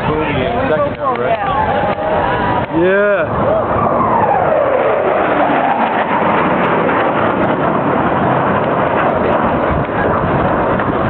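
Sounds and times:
jet flying past: 0:00.0 - 0:11.0.

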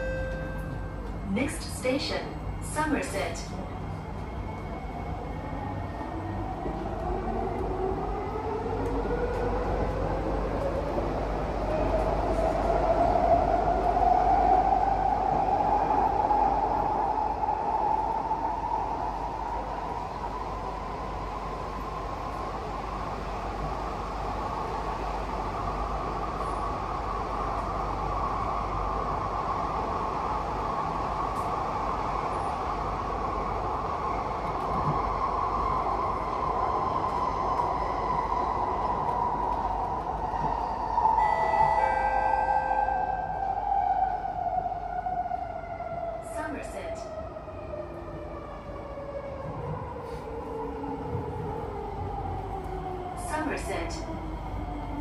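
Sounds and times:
train ride rumble: 0:00.0 - 0:55.0.

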